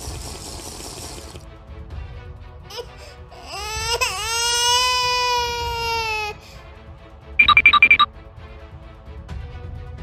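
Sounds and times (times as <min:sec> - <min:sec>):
background music: 0:01.0 - 0:10.0.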